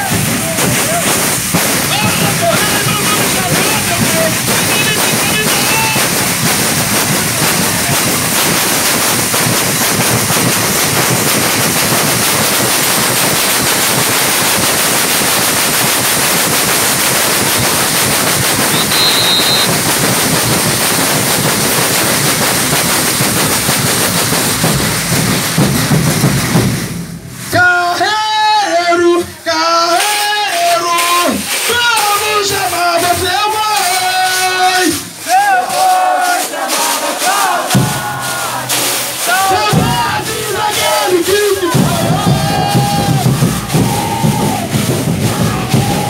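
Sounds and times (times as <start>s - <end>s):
metal disc shakers rattling: 0.0s - 26.6s
people singing: 27.7s - 43.2s.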